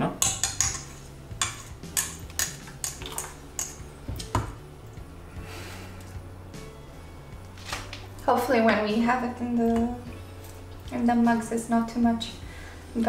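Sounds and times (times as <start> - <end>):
metal spoon stirring in saucepan: 0.2 - 3.9.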